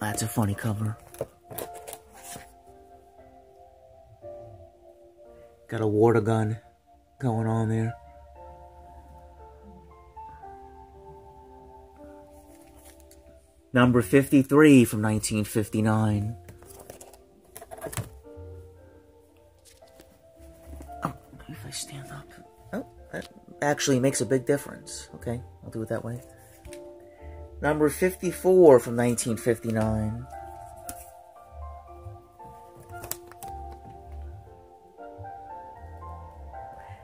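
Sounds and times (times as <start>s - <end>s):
background music: 0.0s - 37.0s
plastic-bagged comic book handled: 0.3s - 2.6s, 12.3s - 13.2s, 16.4s - 18.2s, 32.7s - 33.8s
plastic sleeve crinkling: 1.0s - 2.5s.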